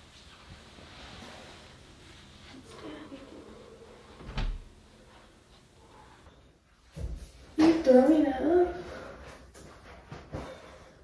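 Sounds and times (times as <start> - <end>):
door opening: 4.1 - 4.8.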